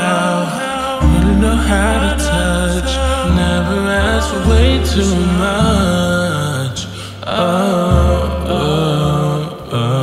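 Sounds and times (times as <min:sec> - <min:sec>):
deep sustained bass: 0:00.9 - 0:09.4.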